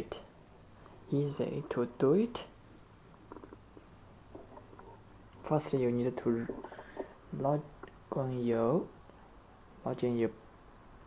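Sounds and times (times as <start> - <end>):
quiet low hum: 0.0 - 11.0.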